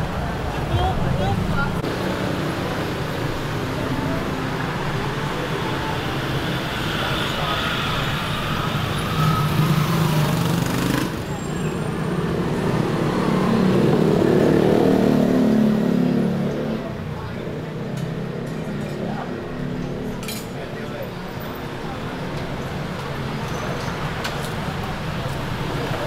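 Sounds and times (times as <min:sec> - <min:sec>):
motorbikes and cars passing: 0:00.0 - 0:26.0
people chattering: 0:00.0 - 0:26.0
traffic noise: 0:00.0 - 0:26.0.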